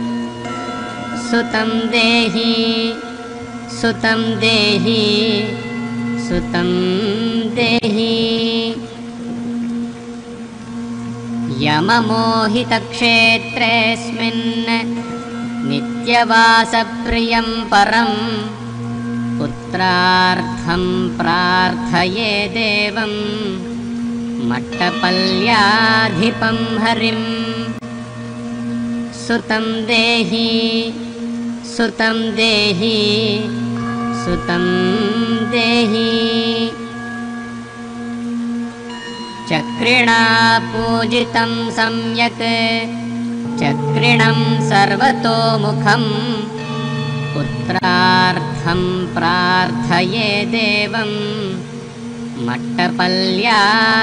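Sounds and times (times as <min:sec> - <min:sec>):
low musical drone: 0:00.0 - 0:54.0.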